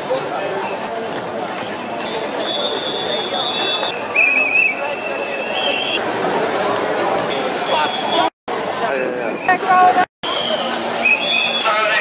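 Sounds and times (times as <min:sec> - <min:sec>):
crowd chatter: 0:00.0 - 0:12.0
high whistle blowing: 0:02.4 - 0:06.0, 0:10.2 - 0:11.8.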